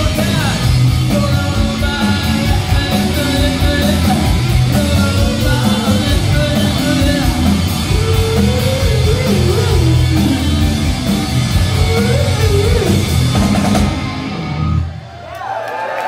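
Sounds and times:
live rock band playing: 0:00.0 - 0:15.2
crowd noise: 0:00.0 - 0:16.0.

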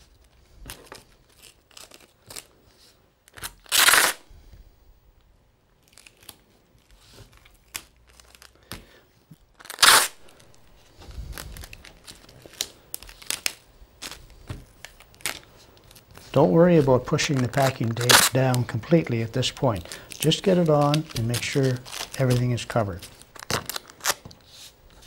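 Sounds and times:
packing tape ripping off roll: 0:00.8 - 0:04.2, 0:05.8 - 0:10.6, 0:11.2 - 0:24.4
tape crinkling and taps: 0:11.6 - 0:24.5.

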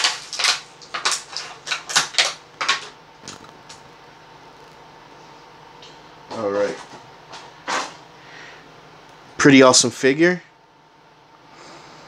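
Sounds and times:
plastic packaging crinkling: 0:00.0 - 0:03.8.

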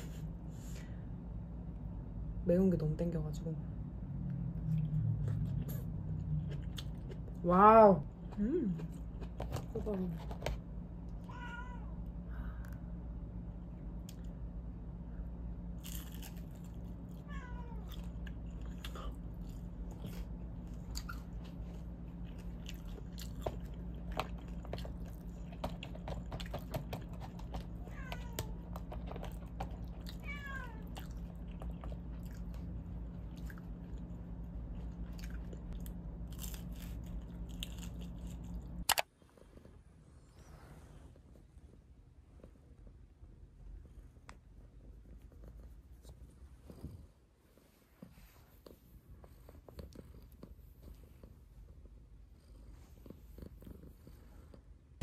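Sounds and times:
low steady hum: 0:00.0 - 0:55.0
chewing: 0:04.6 - 0:07.4, 0:17.8 - 0:27.8, 0:28.6 - 0:30.2, 0:30.8 - 0:39.6, 0:48.6 - 0:51.3
cat meowing: 0:11.2 - 0:12.0, 0:17.3 - 0:18.0, 0:27.8 - 0:28.6, 0:30.1 - 0:31.1.

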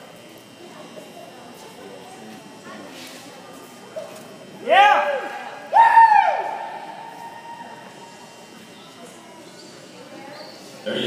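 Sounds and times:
high-pitched cheering whoop: 0:04.7 - 0:07.8.

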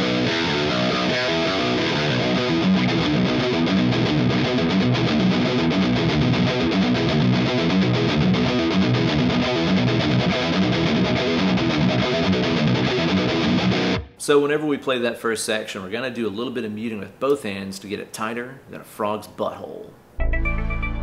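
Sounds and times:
distorted electric guitar riff: 0:00.0 - 0:14.1.

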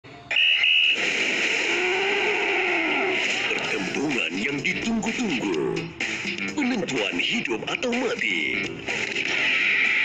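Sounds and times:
high steady alarm beep: 0:00.3 - 0:01.0.

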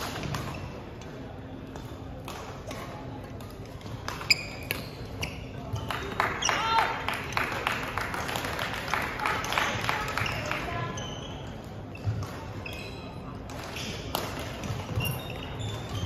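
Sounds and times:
racket hitting shuttlecock: 0:00.0 - 0:00.7, 0:01.8 - 0:04.9.

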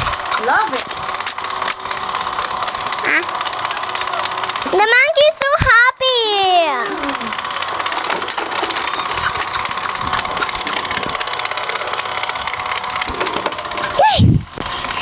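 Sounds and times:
toy motor whirring: 0:00.0 - 0:15.0
child's voice: 0:03.0 - 0:03.3, 0:04.6 - 0:07.3.

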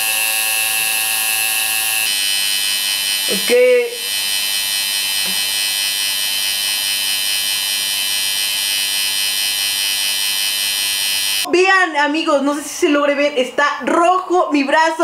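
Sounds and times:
tattoo machine buzzing: 0:00.0 - 0:11.5.

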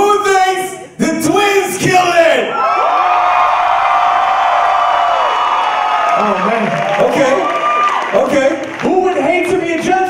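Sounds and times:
audience cheering and whooping: 0:02.5 - 0:08.9.

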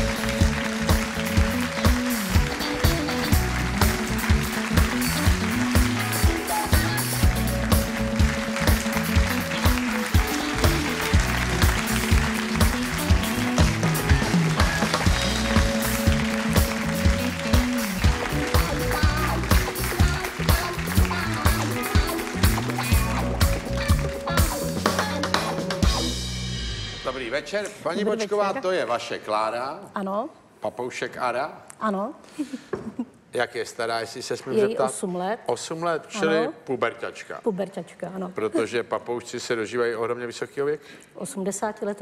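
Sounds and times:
upbeat band music: 0:00.0 - 0:28.8.

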